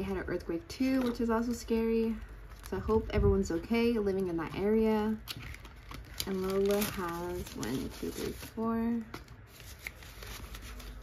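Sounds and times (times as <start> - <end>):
paper bills rustling: 5.3 - 11.0.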